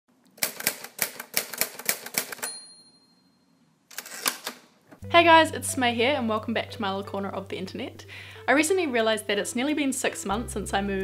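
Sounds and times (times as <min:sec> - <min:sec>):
typewriter keys clacking: 0:00.4 - 0:02.5
typewriter bell ringing: 0:02.3 - 0:03.4.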